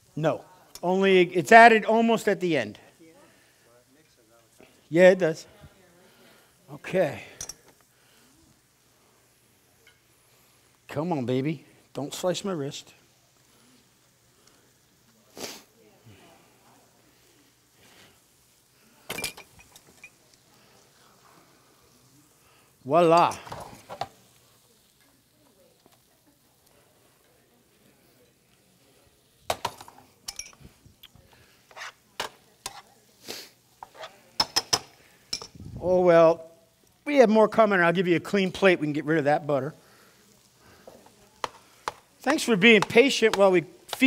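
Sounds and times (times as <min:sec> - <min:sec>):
kitchen background: 0:00.0 - 0:44.0
kitchen utensils clinking: 0:19.0 - 0:20.2, 0:23.2 - 0:24.2, 0:29.5 - 0:30.7, 0:33.8 - 0:35.6.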